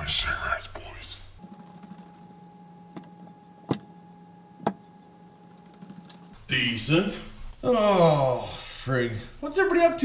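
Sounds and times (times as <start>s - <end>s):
faint electrical hum: 0.0s - 10.0s.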